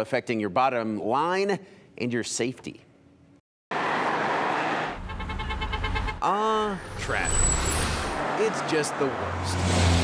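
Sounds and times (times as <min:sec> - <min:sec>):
freeway traffic rushing: 0:03.8 - 0:10.0.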